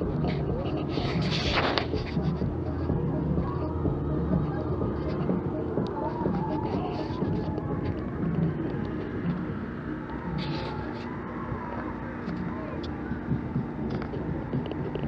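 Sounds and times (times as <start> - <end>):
faint hum: 0.0 - 15.0
indistinct voices: 0.0 - 15.0
low rumble: 0.0 - 15.0.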